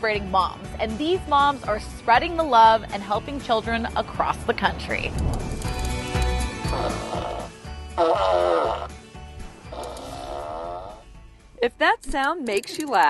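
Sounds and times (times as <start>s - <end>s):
toy fart noises: 6.7s - 8.9s, 9.7s - 11.0s.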